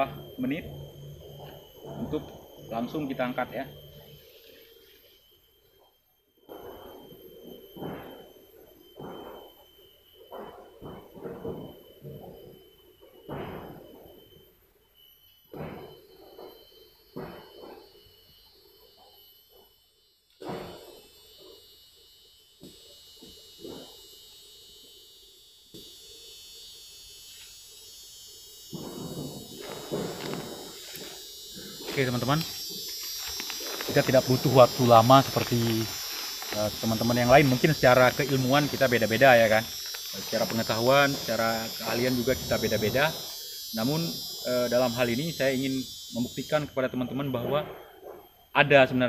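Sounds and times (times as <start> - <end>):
faint high-pitched whine: 0.0 - 49.0
footsteps crunching leaf litter: 31.9 - 41.0.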